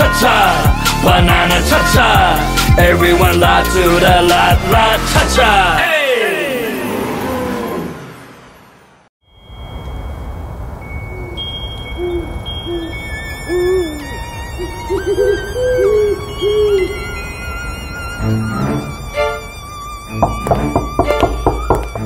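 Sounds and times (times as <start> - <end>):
pop song: 0.0 - 6.7
thin high wavering tones: 9.3 - 22.0
owl hooting: 10.9 - 19.3.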